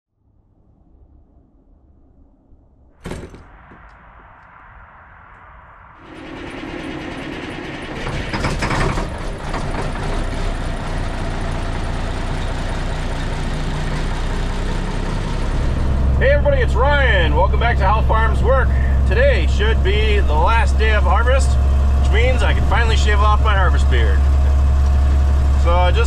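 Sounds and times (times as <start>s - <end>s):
sharp knock: 3.0s - 3.9s
diesel truck engine running: 6.0s - 26.0s.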